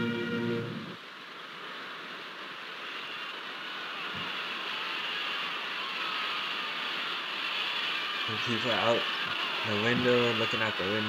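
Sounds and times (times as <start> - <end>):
steady hiss-like noise: 0.0 - 11.0.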